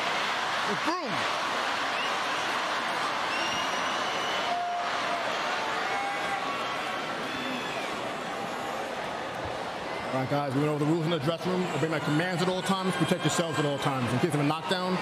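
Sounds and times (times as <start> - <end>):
arena crowd voices: 0.0 - 15.0.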